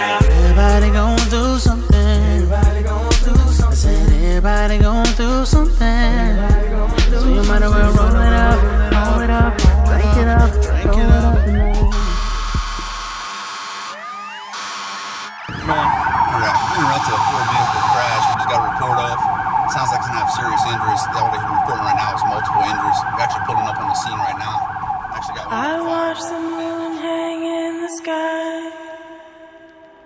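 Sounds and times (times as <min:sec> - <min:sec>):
low musical drone: 0:00.0 - 0:13.0
emergency vehicle siren: 0:00.0 - 0:27.4.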